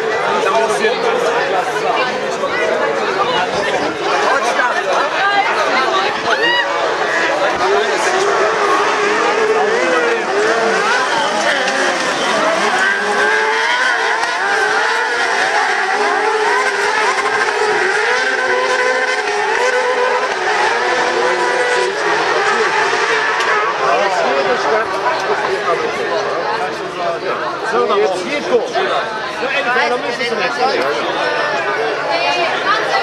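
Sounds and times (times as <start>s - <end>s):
racing engines revving: 0.0s - 33.0s.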